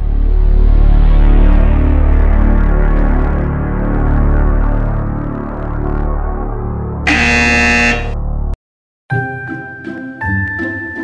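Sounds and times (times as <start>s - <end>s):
harsh wrong answer buzzer: 7.1s - 8.2s.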